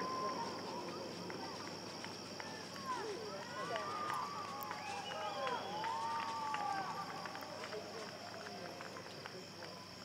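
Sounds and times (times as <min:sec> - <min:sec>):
distant chatter of people: 0:00.0 - 0:10.0
high-pitched insect chorus: 0:00.0 - 0:10.0.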